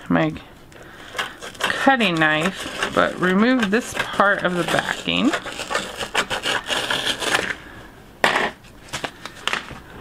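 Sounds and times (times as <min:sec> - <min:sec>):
scissors snipping paper: 0:01.2 - 0:07.5.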